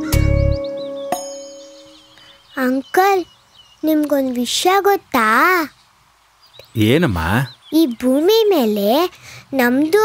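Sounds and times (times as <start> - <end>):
young girl speaking: 2.6 - 5.8, 7.7 - 10.0.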